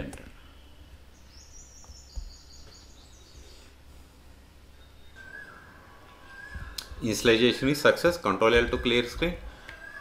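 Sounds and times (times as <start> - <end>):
faint high chirping tones: 0.0 - 10.0
lower held tone: 4.7 - 7.0.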